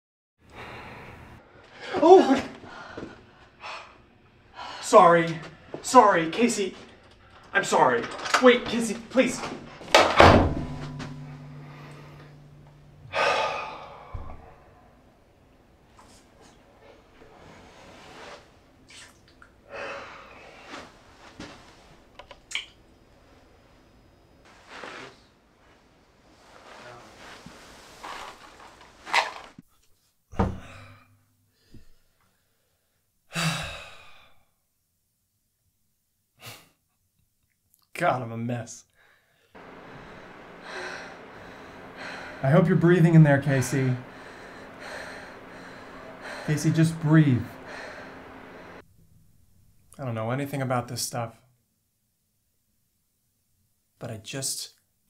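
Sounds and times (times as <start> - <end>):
wooden door slamming: 9.9 - 11.1
man sighing: 11.6 - 14.7, 33.3 - 34.5, 43.8 - 46.5
person taking sharp breath: 44.0 - 46.5, 47.4 - 48.8.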